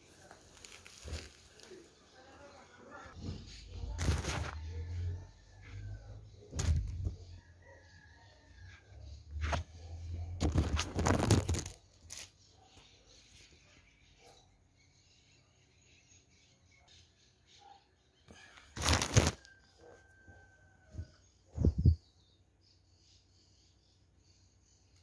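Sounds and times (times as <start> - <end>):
clothes rustling: 0.0 - 1.9, 18.8 - 19.4.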